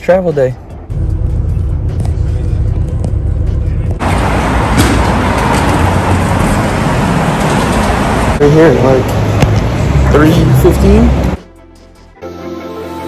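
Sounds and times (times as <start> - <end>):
traffic and bustle: 0.0 - 11.5
bus engine idling: 0.6 - 11.4.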